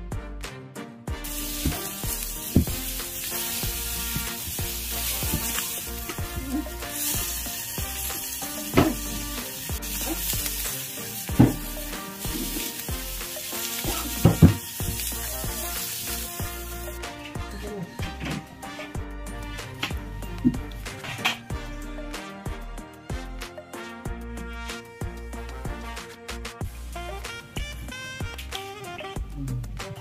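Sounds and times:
meat sizzling on hot iron: 0:01.2 - 0:17.2.

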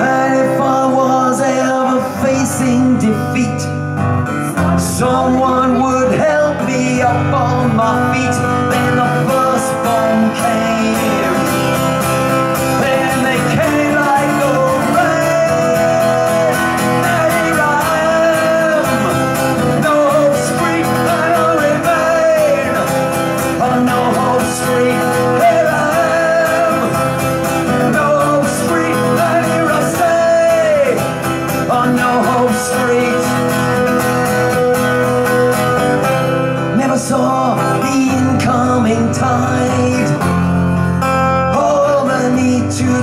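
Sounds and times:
man singing: 0:00.0 - 0:43.0
strummed acoustic guitar: 0:00.0 - 0:43.0.

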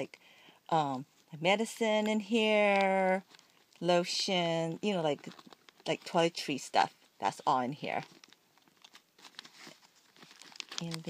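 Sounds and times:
faint rustling in pouch: 0:02.4 - 0:11.0.

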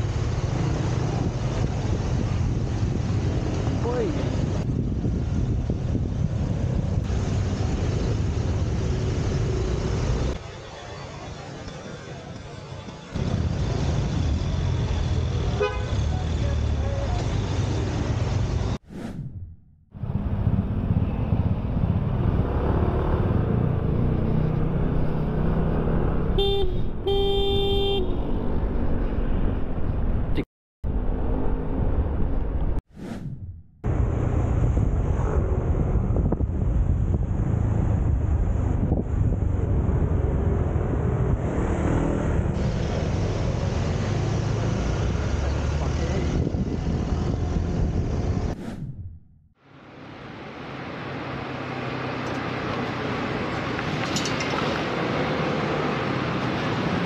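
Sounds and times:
motorbike wind and road rumble: 0:00.0 - 0:57.0
vehicle horn: 0:15.5 - 0:16.1, 0:26.4 - 0:28.3.

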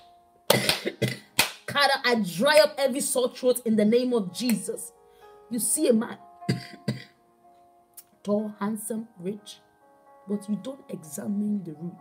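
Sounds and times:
soft background music: 0:00.0 - 0:12.0
woman clearing her throat: 0:00.5 - 0:01.3, 0:06.5 - 0:07.1.

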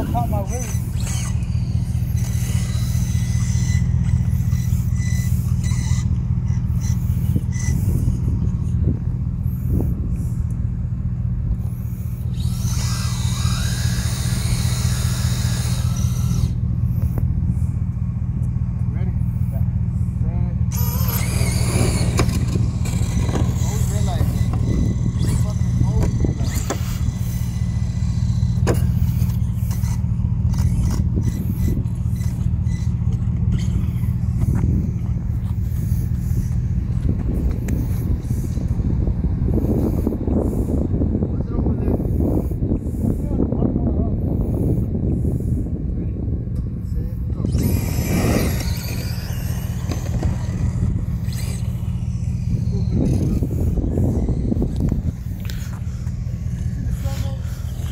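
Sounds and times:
rc car whine with tyre noise: 0:00.0 - 0:57.9
steady low rumble: 0:00.0 - 0:57.9.

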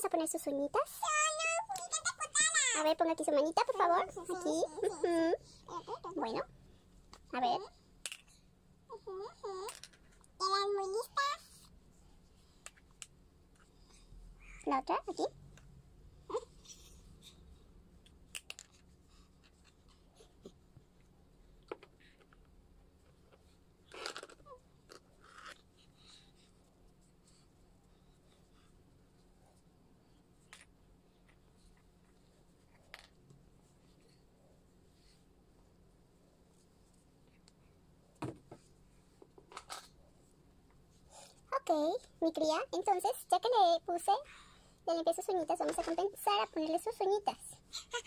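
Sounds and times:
hands rustling plush toy: 0:00.8 - 0:06.4.

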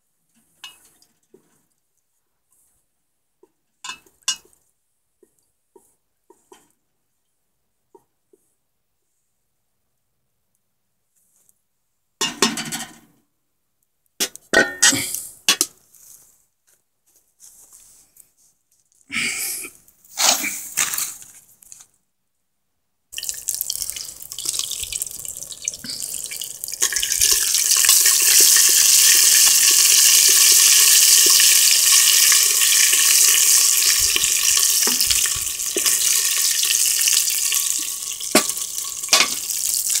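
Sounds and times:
oil sizzling in a metal pot: 0:23.2 - 0:40.0.

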